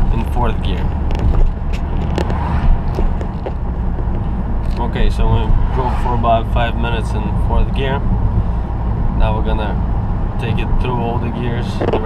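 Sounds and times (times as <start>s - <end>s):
car engine drone: 0.0s - 12.0s
road noise: 0.0s - 12.0s.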